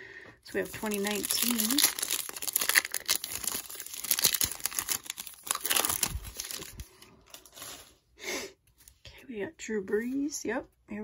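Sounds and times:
foil wrapper tearing and crinkling: 0:00.5 - 0:08.0.

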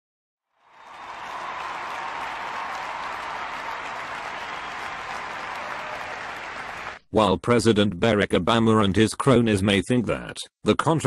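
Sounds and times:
crowd clapping: 0:00.6 - 0:07.0.

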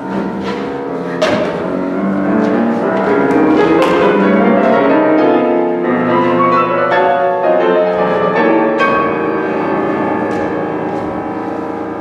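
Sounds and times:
piano playing loud chords: 0:00.0 - 0:12.0.

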